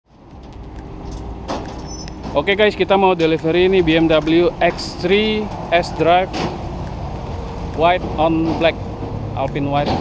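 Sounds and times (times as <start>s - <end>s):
low vehicle rumble: 0.1s - 10.0s.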